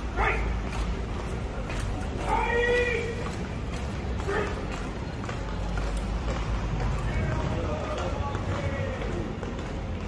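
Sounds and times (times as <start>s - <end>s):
man shouting drill command: 0.1s - 0.6s, 2.2s - 3.4s, 4.2s - 4.6s.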